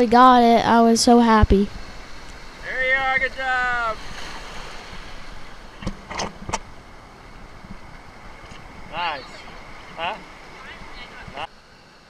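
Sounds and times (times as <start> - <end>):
ocean surf washing and fizzing: 0.9 - 12.0
sharp water splashes: 1.7 - 11.5.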